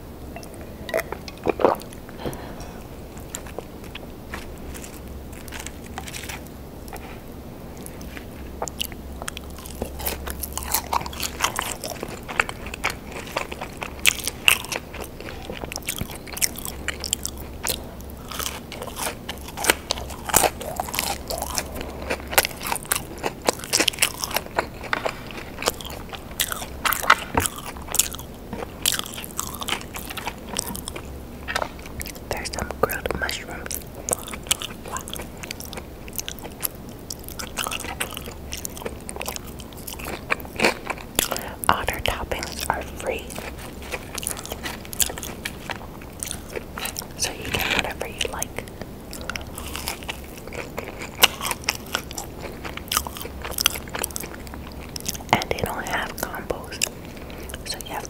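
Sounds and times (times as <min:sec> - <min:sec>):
chewing with wet mouth sounds: 0:00.3 - 0:58.0
soft food crunches: 0:00.4 - 0:58.0.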